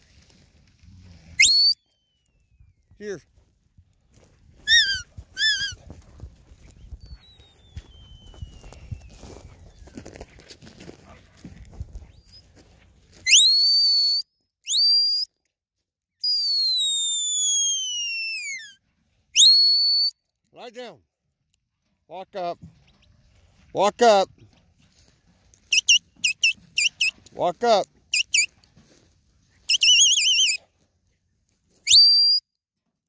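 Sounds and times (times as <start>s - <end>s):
handler's whistle commands: 1.4s - 2.1s, 4.7s - 5.8s, 13.3s - 15.3s, 19.4s - 20.1s, 25.7s - 28.5s, 29.7s - 30.6s, 31.8s - 32.4s.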